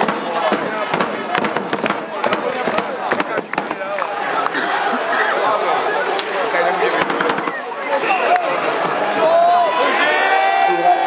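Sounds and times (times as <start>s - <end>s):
hockey sticks and puck clacking: 0.0s - 4.6s
spectators chatting: 0.0s - 11.0s.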